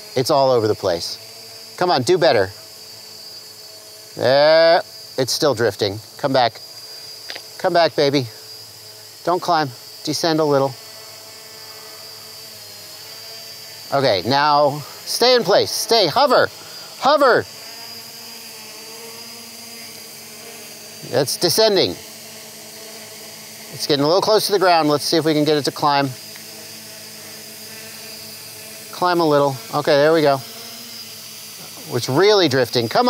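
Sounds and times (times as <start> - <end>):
drone motors humming: 0.0 - 33.0
thin high whine: 0.0 - 33.0.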